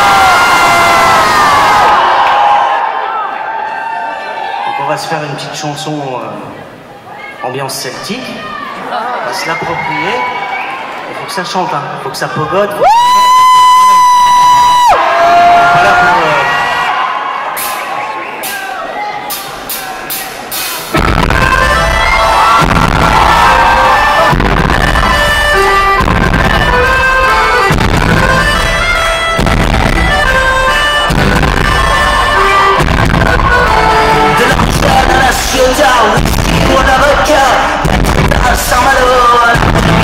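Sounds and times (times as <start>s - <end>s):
drums steady beat: 17.6s - 40.0s
live rock band playing: 17.6s - 40.0s.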